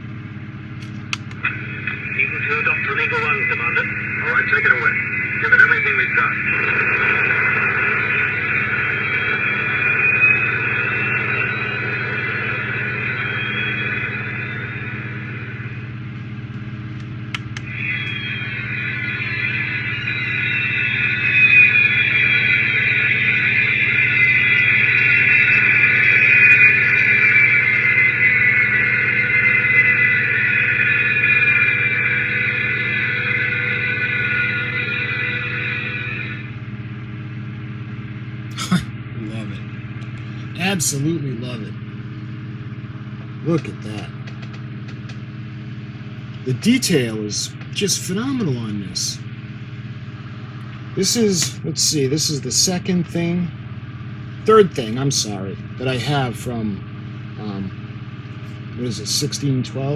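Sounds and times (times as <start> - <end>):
high electronic whine: 0.0 - 59.9
low hum: 0.0 - 59.9.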